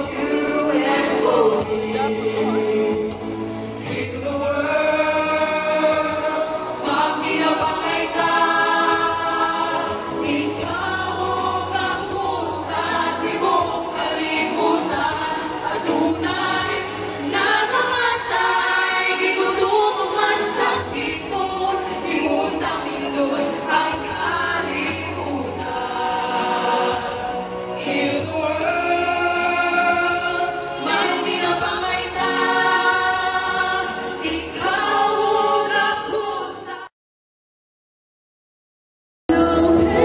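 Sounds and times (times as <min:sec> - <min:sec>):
choir singing held notes: 0:00.0 - 0:36.9.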